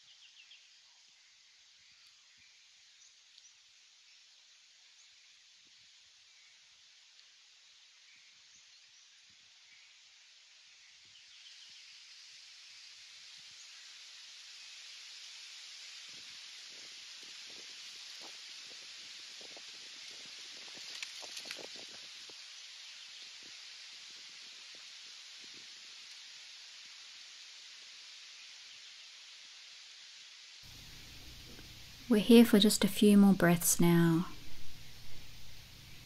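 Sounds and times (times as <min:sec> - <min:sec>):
wind rustling leaves: 0:00.0 - 0:32.1, 0:34.3 - 0:36.0
leaf crackling: 0:30.7 - 0:32.1.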